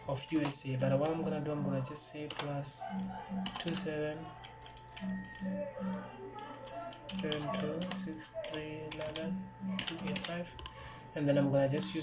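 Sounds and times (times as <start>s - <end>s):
party music: 0.0s - 10.6s
voices: 0.1s - 12.0s
keyboard keystrokes: 0.2s - 10.8s.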